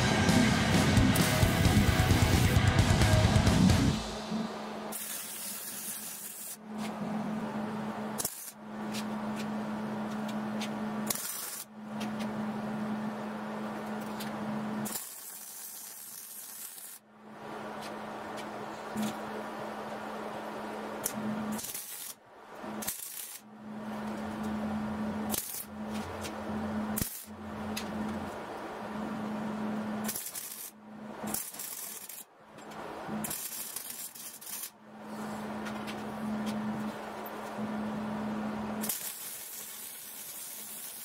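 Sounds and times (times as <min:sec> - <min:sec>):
low hum: 0:00.0 - 0:05.0
welding arc crackling: 0:00.0 - 0:06.6, 0:08.2 - 0:08.6, 0:11.1 - 0:11.7, 0:14.8 - 0:17.0, 0:21.0 - 0:23.5, 0:25.3 - 0:28.0, 0:30.0 - 0:32.3, 0:33.1 - 0:34.8, 0:38.8 - 0:41.0.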